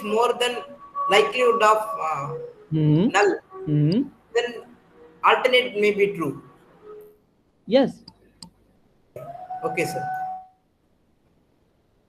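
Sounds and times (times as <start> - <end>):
person speaking: 0.0 - 4.6, 5.2 - 6.5, 9.7 - 10.1.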